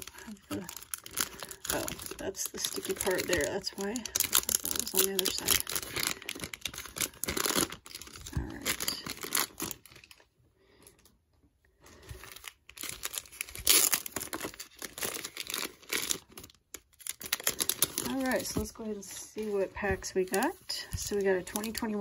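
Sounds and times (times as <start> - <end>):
plastic bag crinkling and tearing: 0.0 - 10.3, 11.8 - 22.0.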